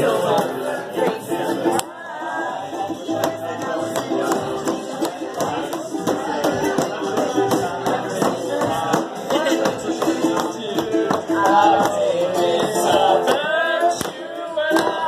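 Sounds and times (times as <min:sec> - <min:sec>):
person singing: 0:00.0 - 0:15.0
ukulele strumming: 0:00.0 - 0:15.0.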